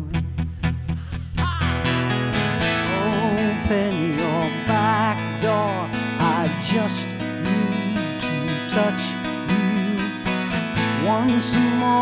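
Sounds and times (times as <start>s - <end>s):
acoustic guitar strummed: 0.0s - 12.0s.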